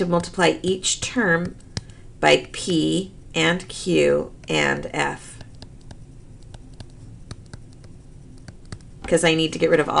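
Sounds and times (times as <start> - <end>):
stylus tapping on tablet: 1.2 - 2.0, 5.3 - 9.2.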